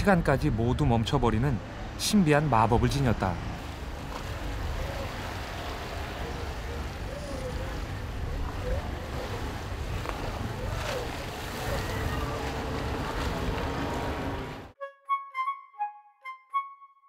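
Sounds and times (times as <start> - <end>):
surf breaking on rocks: 3.6 - 14.7.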